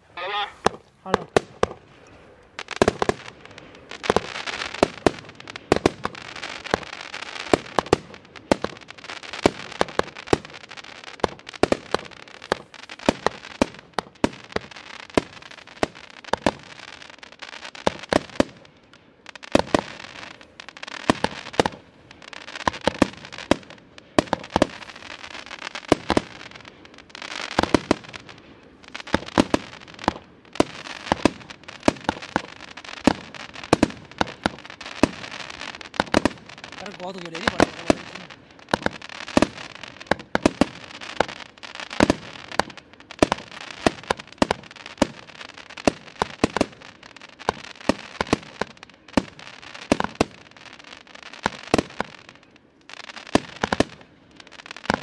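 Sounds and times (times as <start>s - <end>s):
fireworks launch reports: 0.0s - 16.9s, 17.8s - 46.8s
fireworks crackling: 0.0s - 55.0s.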